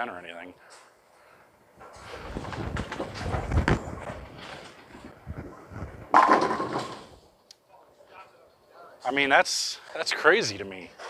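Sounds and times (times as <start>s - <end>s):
bowling pins clattering: 1.8s - 7.2s
bowling ball rolling: 1.8s - 7.3s.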